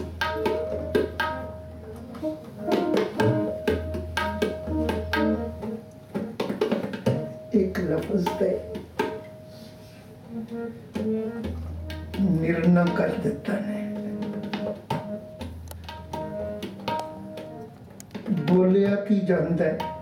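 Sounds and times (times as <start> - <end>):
tabla strokes: 0.0 - 10.0, 10.9 - 20.0
harmonium drone and melody: 0.7 - 6.4, 8.7 - 18.6.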